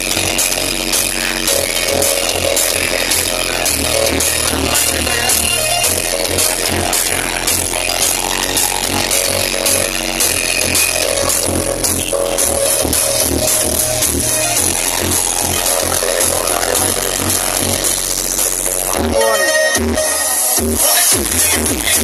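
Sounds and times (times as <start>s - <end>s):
loud electronic dance music: 0.0s - 22.0s.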